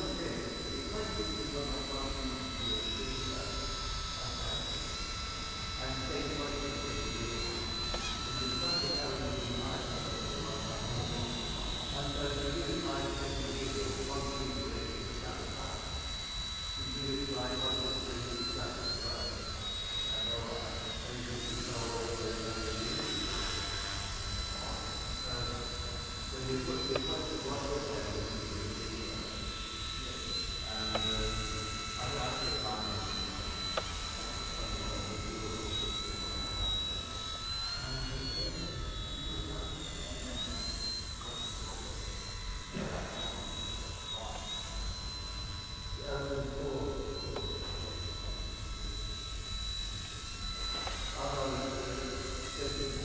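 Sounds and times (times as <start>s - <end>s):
toy helicopter rotor whine: 0.0s - 53.0s.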